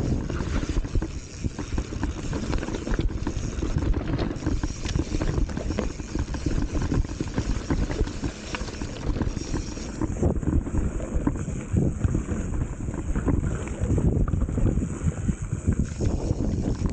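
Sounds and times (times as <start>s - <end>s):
tyres rumbling on dirt and stones: 0.0s - 13.5s
bike rattling and knocking: 0.0s - 16.9s
wind buffeting microphone: 0.0s - 16.9s.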